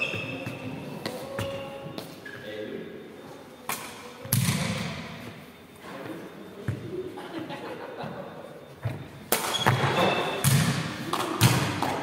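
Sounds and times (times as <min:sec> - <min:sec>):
ball hits echoing in a hall: 0:03.6 - 0:05.4, 0:08.8 - 0:12.0.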